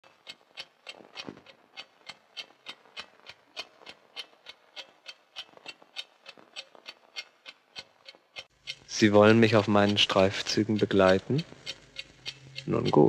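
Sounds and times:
steady faint ticking: 0.0 - 13.0.

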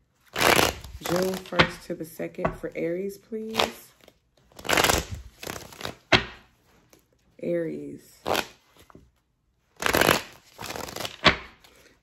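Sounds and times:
cards being riffle-shuffled: 0.2 - 1.9, 3.5 - 7.1, 9.8 - 12.0.

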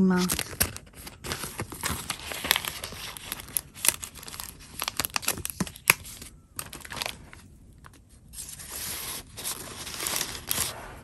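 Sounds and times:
sharp paper crack: 0.0 - 10.8
paper crinkling and rustling: 0.0 - 11.0.

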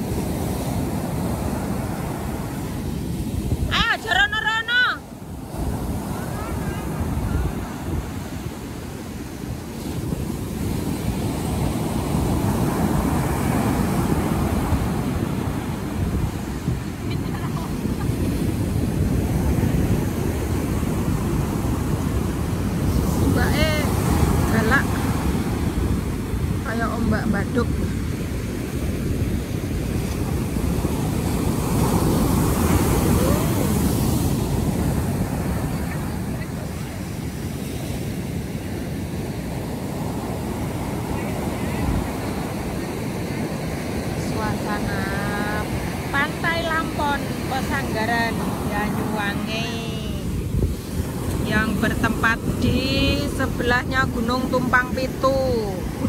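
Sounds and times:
ocean surf breaking: 0.0 - 56.0
wind buffeting microphone: 0.0 - 56.0.

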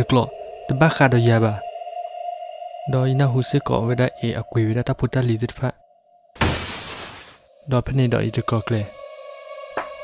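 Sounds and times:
glass shattering: 6.4 - 7.4.

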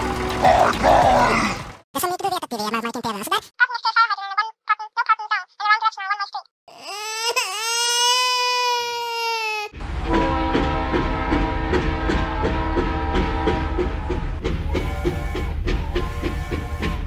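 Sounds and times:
cartoon voice crying wail: 3.6 - 9.8.

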